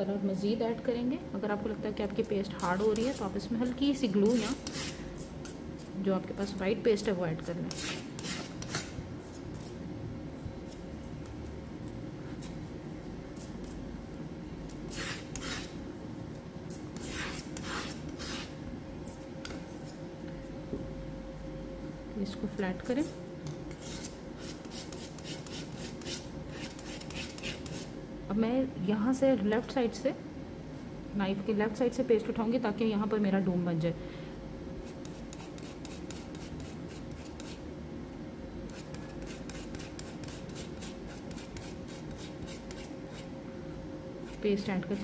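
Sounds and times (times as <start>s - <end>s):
palette knife scraping paste: 2.5s - 3.3s, 4.2s - 5.9s, 7.4s - 9.8s, 14.7s - 15.8s, 16.7s - 18.5s, 23.7s - 27.9s, 34.8s - 37.6s, 38.7s - 43.3s.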